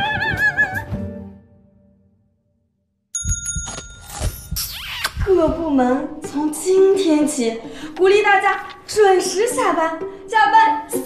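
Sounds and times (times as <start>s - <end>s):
music: 0.0s - 2.8s, 5.2s - 11.0s
bell-like ringing jingle: 3.2s - 4.6s
low drum beat: 4.3s - 6.8s.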